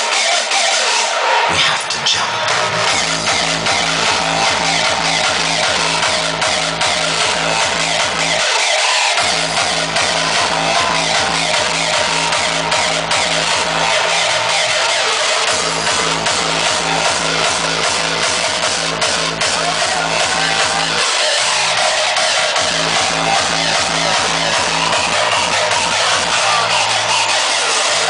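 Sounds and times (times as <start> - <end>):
hardstyle dance music: 0.0 - 28.0
pounding kick drum: 9.2 - 13.8.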